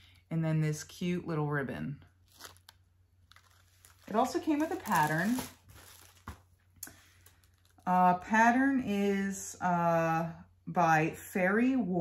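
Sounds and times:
paper rustling: 0:02.2 - 0:07.8.

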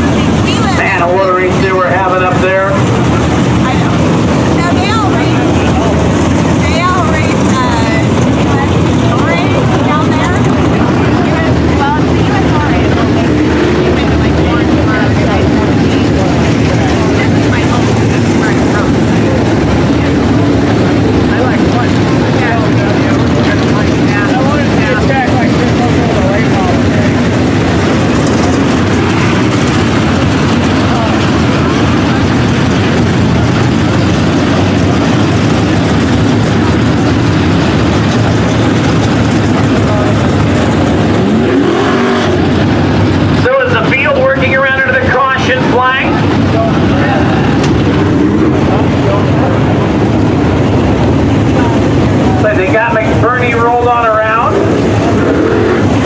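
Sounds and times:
engine accelerating: 0:00.0 - 0:56.0
race car engines: 0:00.0 - 0:56.0.

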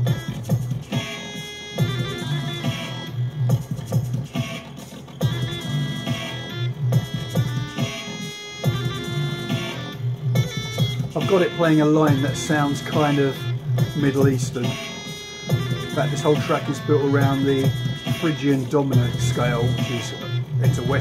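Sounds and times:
dub drums: 0:00.0 - 0:21.0
synth bass: 0:05.2 - 0:18.3, 0:19.0 - 0:21.0.

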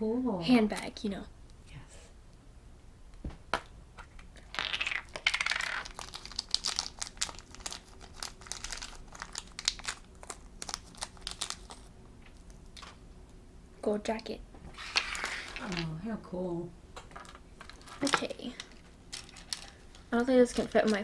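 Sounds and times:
plastic capsule crinkling: 0:04.0 - 0:13.0, 0:17.0 - 0:21.0.

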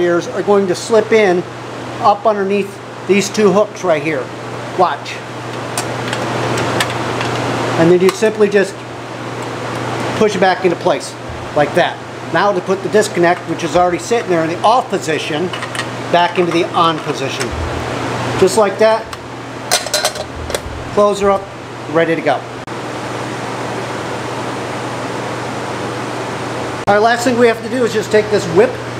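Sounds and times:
low hum: 0:11.1 - 0:12.4, 0:17.0 - 0:22.7.

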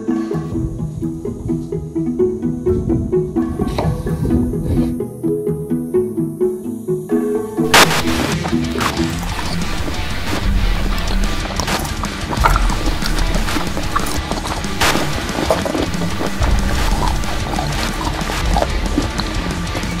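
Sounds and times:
pizzicato strings: 0:00.0 - 0:20.0
dense noisy music with sharp hits: 0:07.6 - 0:20.0
loud musical crash: 0:07.6 - 0:20.0.

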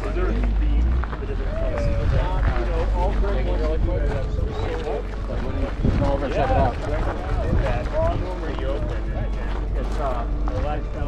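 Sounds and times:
low rumble: 0:00.0 - 0:11.0
people talking: 0:00.0 - 0:11.0.

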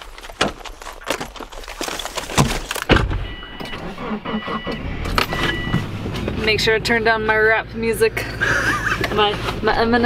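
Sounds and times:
heavy thumps: 0:00.0 - 0:03.8
knocks and rustling: 0:00.0 - 0:04.1
car door opening: 0:02.3 - 0:06.3
car warning chime beeps: 0:03.2 - 0:06.7.

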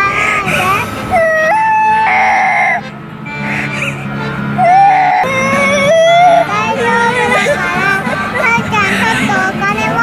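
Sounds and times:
young boy crying: 0:00.0 - 0:02.8, 0:03.4 - 0:10.0
background music: 0:00.5 - 0:10.0.

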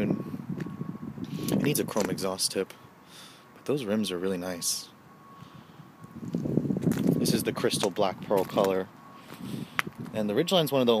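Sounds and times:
wind buffeting microphone: 0:00.0 - 0:02.3, 0:05.9 - 0:10.4.

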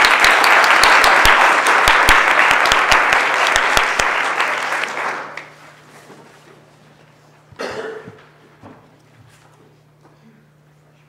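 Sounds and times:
person coughing: 0:07.6 - 0:08.3.

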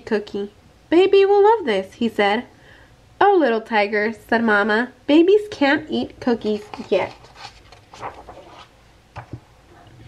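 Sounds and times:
person speaking: 0:04.0 - 0:08.7
book page turning: 0:06.4 - 0:09.4.

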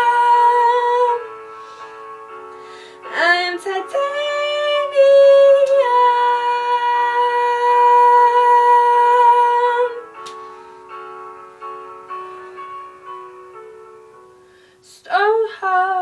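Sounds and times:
woman singing: 0:00.0 - 0:01.4, 0:03.0 - 0:10.1, 0:14.9 - 0:16.0
piano backing track: 0:00.0 - 0:16.0.

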